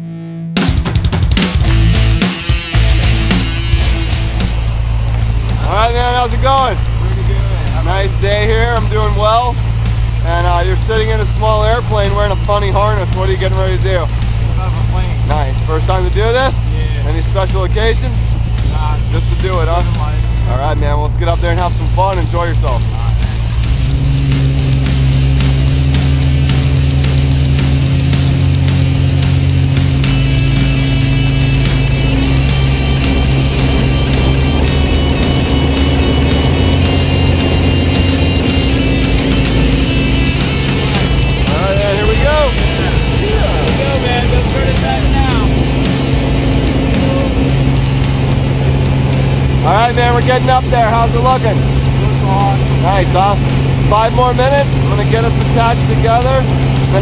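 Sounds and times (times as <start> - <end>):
music playing: 0.0 - 57.0
aircraft engine and propeller droning: 1.2 - 57.0.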